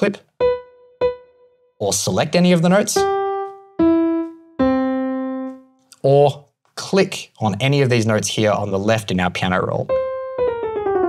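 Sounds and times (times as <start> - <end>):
piano notes: 0.0 - 6.4, 9.6 - 11.0.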